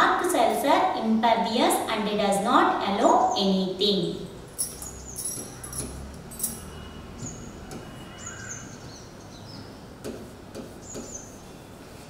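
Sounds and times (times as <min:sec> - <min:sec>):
pen tapping on display: 0:10.0 - 0:11.2.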